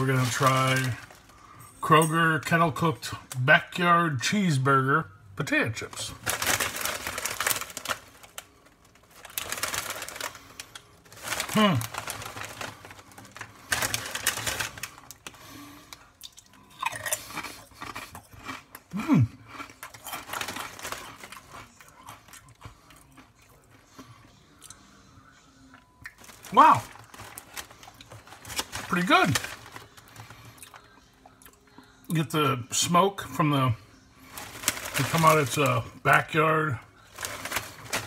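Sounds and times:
chip bag crinkling: 0.0 - 1.9, 5.7 - 23.7, 26.1 - 31.0, 34.2 - 38.0.

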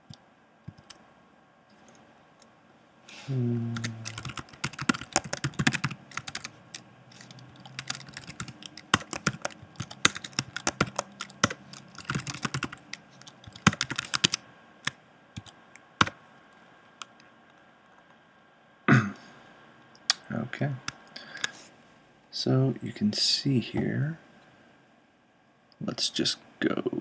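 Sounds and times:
typing on computer keyboard: 0.0 - 1.0, 3.8 - 14.4, 15.4 - 16.2.

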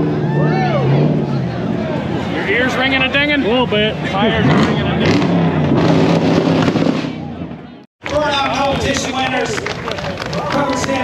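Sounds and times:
crowd chatter: 0.0 - 11.0
car engine revving with pops: 4.5 - 7.3.

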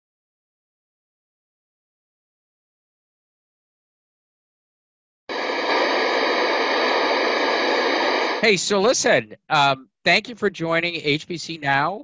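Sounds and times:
television static hiss: 5.3 - 12.0.

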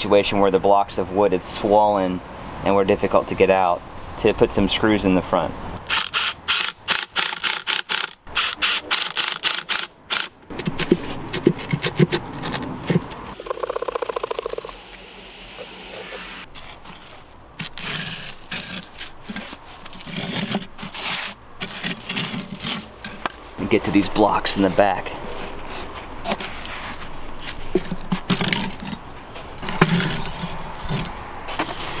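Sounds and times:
rapid chattering: 13.3 - 16.5
wood knocking and scraping on brick: 16.4 - 23.6, 26.0 - 31.8.

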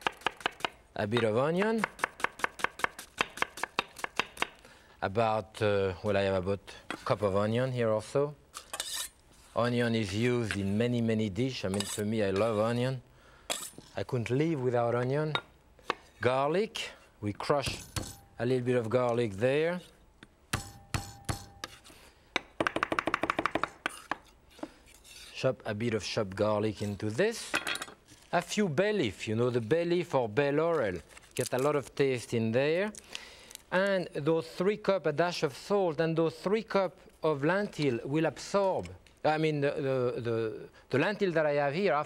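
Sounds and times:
knife chopping on wooden board: 0.0 - 4.5.

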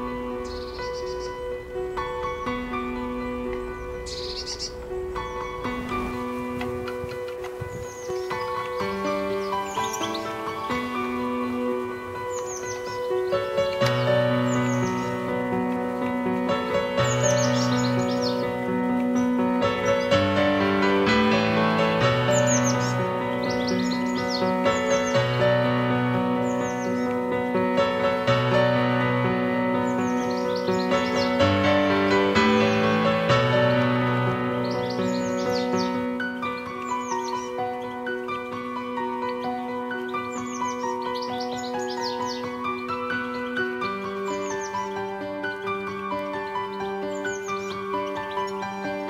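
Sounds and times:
instrumental music with held chords: 0.0 - 49.0
small birds chirping: 0.0 - 49.0.

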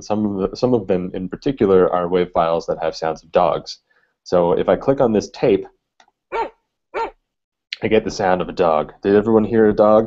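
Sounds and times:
dog barking: 6.3 - 7.2.

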